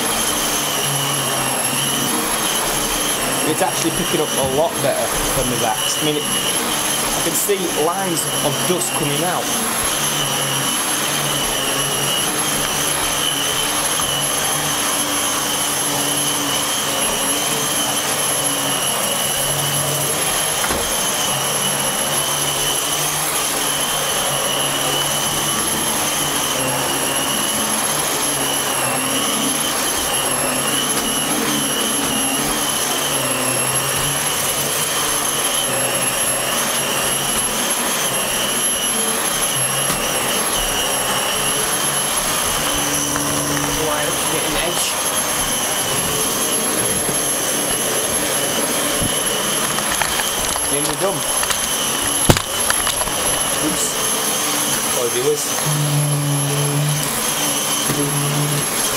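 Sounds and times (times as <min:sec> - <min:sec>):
vacuum cleaner running: 0:00.0 - 0:58.9.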